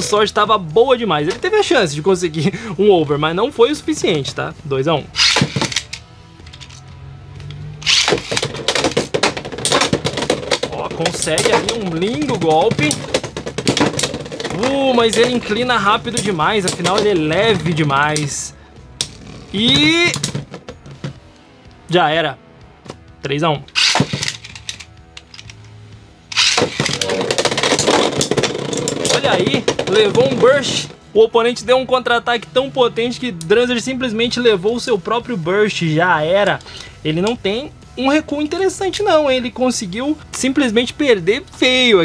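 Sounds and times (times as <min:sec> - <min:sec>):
faint background music: 0:00.0 - 0:42.0
spinning tops launching: 0:05.2 - 0:06.0, 0:07.8 - 0:09.0, 0:23.7 - 0:25.4, 0:26.3 - 0:29.2
spinning tops clicking and clashing: 0:07.5 - 0:10.5, 0:23.7 - 0:25.7, 0:26.3 - 0:29.6.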